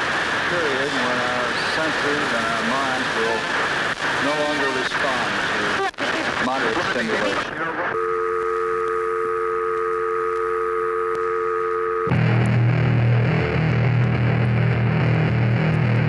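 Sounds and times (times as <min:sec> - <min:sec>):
steady electronic tone: 0:07.9 - 0:16.0
hardcore band playing: 0:12.1 - 0:16.0.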